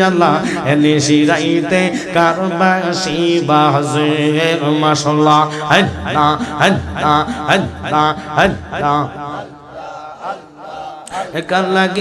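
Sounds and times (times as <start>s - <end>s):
men chanting: 0.0s - 12.0s.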